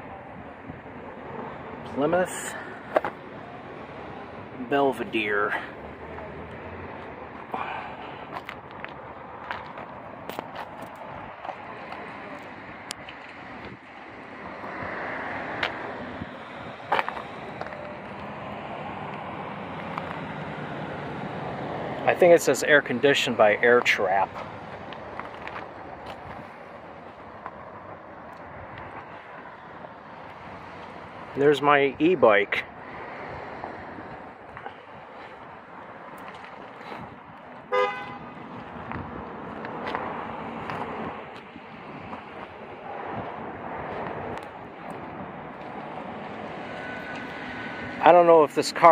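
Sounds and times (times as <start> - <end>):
outdoor background noise: 0.0 - 48.9.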